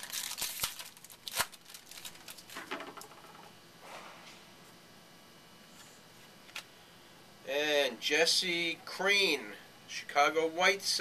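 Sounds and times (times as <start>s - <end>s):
foil wrapper crinkling: 0.0s - 3.1s.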